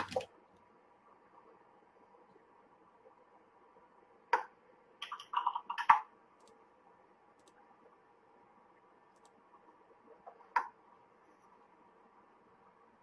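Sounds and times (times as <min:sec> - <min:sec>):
faint sparse clicks: 0:07.4 - 0:07.6, 0:09.1 - 0:09.4.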